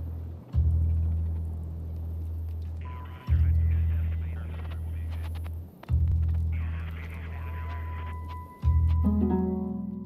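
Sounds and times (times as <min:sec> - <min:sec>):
deep humming bass drone: 0:00.0 - 0:04.0.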